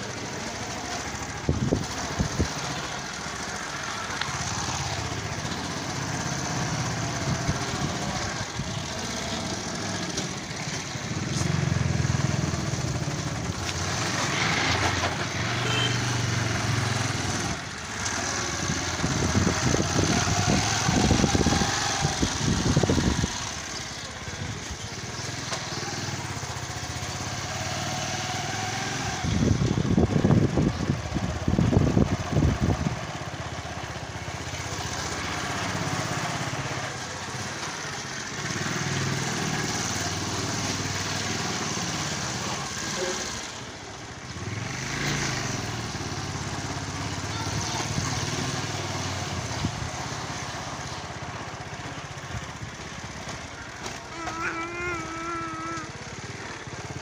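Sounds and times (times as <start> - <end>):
small engine running: 0.0 - 33.0, 44.4 - 57.0.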